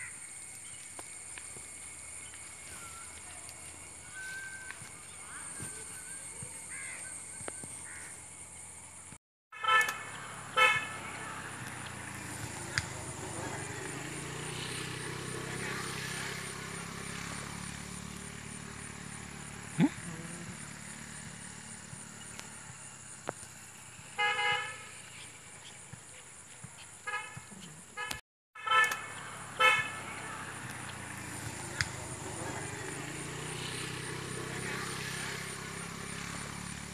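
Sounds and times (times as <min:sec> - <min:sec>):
outdoor background noise: 0:00.0 - 0:36.9
soft bird chirps: 0:01.9 - 0:07.9
vehicle horn toot: 0:09.5 - 0:11.8, 0:24.2 - 0:25.0, 0:27.0 - 0:30.7.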